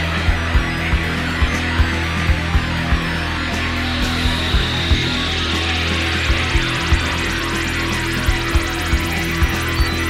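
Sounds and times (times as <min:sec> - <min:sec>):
high held tone: 0:00.0 - 0:10.0
psychedelic space rock: 0:00.0 - 0:10.0.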